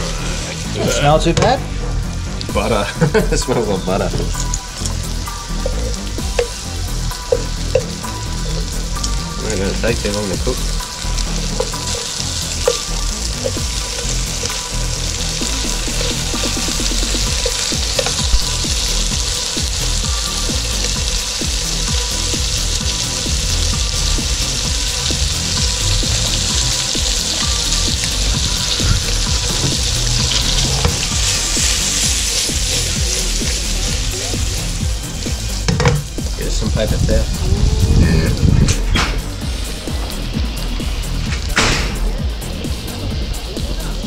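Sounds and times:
fish sizzling in a pan: 0.0 - 36.6.

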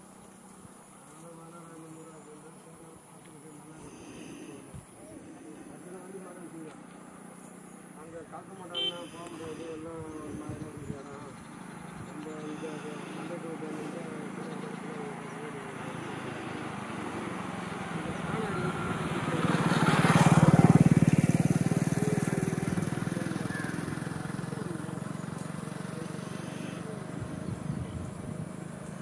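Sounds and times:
vehicle engine passing by: 0.0 - 29.0.

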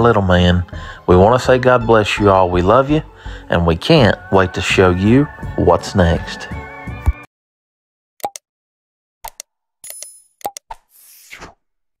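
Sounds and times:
short pops and clicks: 8.2 - 8.4, 9.2 - 10.9.

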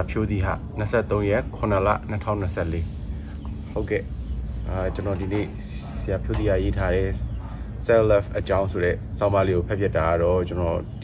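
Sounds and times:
insects chirring: 0.0 - 11.0
man reading aloud: 0.0 - 11.0.

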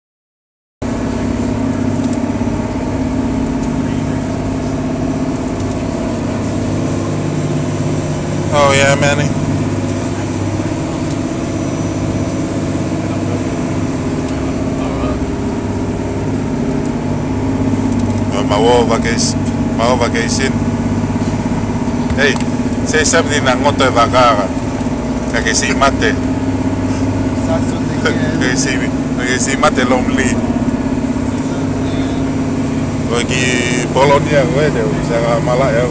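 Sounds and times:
ferry engines droning: 0.8 - 35.9.

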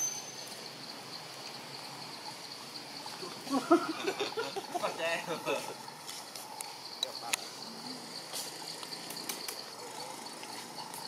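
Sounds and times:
insects trilling: 0.0 - 11.0.

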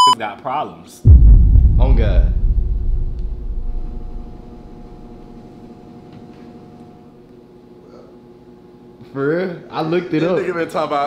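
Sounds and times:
deep low rumble: 1.1 - 5.4.

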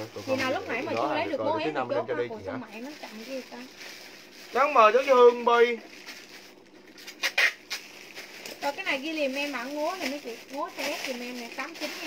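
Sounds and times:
garment rustling: 0.0 - 1.3, 2.7 - 12.0.

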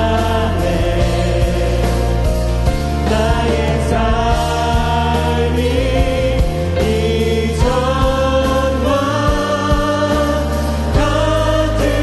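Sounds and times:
band beat: 0.0 - 12.0
bass: 0.0 - 12.0.

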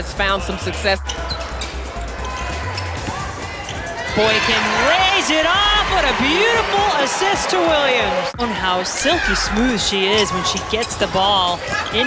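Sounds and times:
arena background noise: 0.0 - 12.0
music: 0.0 - 12.0.

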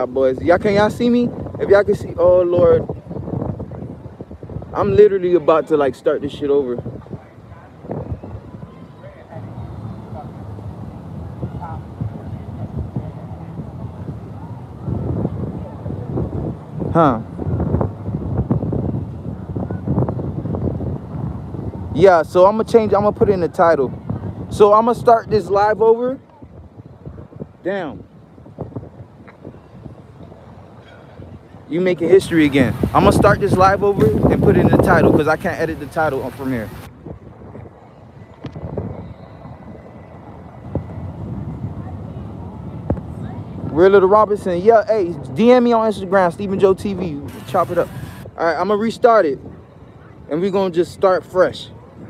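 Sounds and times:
wind rumbling on microphone: 0.0 - 52.0.

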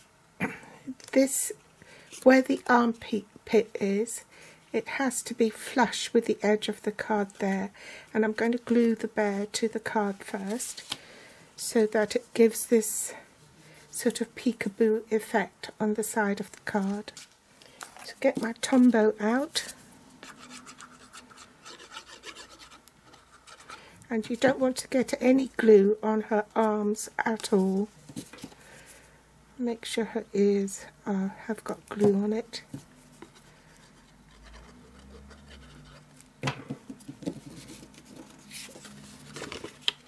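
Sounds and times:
scratchy rubbing on paper: 20.2 - 23.8
paper rustling and scraping: 37.1 - 40.0.

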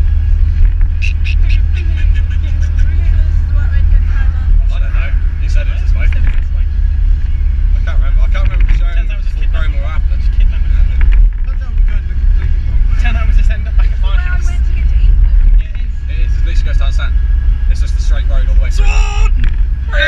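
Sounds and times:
car engine and tyres rumbling: 0.0 - 20.0
voices talking: 0.8 - 20.0.

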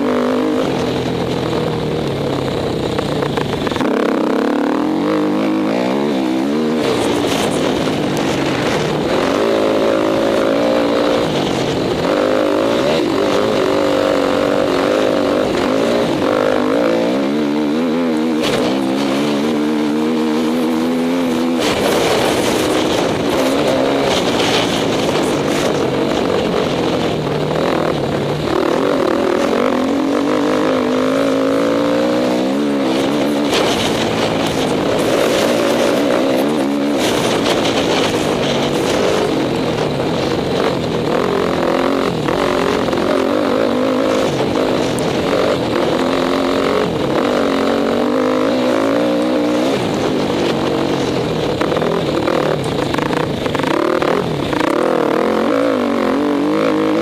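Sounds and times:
motorcycle engine accelerating: 0.0 - 57.0
wind noise: 0.0 - 57.0.

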